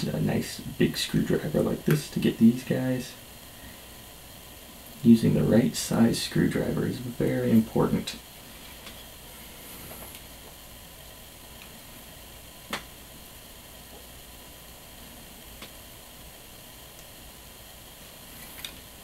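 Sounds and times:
faint steady hiss: 0:00.0 - 0:19.0.

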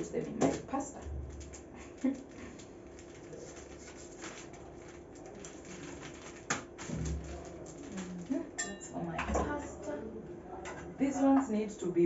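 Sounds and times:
plastic crinkling: 0:00.0 - 0:08.6.

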